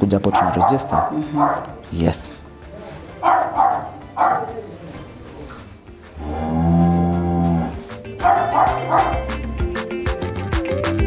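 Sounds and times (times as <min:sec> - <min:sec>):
cow mooing: 0:06.1 - 0:09.2.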